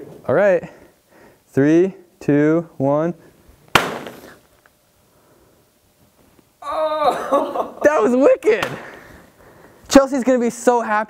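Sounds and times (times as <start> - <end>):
gingerbread house smashing on floor: 3.8 - 4.2.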